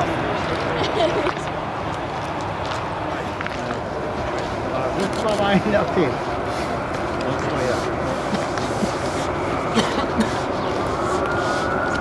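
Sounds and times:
chatter of onlookers: 0.0 - 12.0
jet airliner engine taxiing: 0.0 - 12.0.

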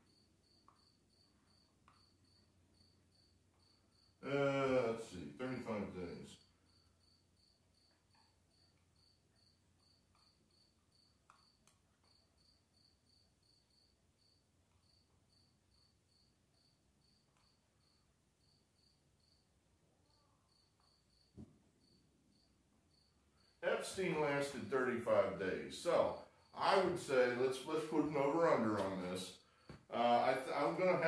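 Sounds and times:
cricket chirping: 0.0 - 31.0.

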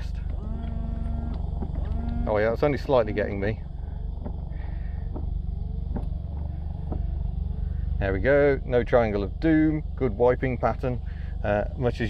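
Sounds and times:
windscreen wiper clicks: 0.0 - 7.5
car engine idling: 0.0 - 12.0.

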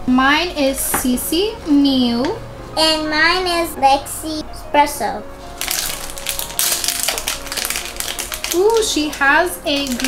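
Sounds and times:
faint background music: 0.0 - 10.0
plastic foil packets crinkling: 5.5 - 10.0.

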